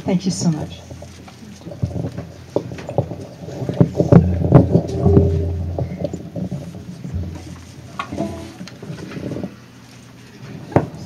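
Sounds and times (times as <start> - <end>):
low rumble: 1.8 - 9.2
microphone handling knocks: 3.8 - 8.8.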